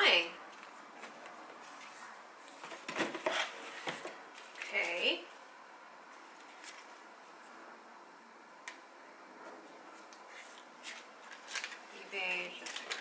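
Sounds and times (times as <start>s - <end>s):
paper rustling: 9.9s - 13.0s.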